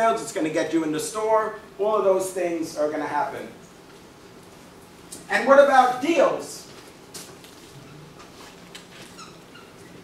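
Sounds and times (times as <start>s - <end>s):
marker squeaking on whiteboard: 7.7s - 10.0s.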